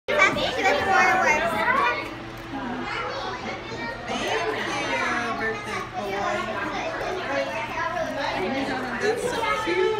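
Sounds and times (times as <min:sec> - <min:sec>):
children chattering: 0:00.1 - 0:09.9.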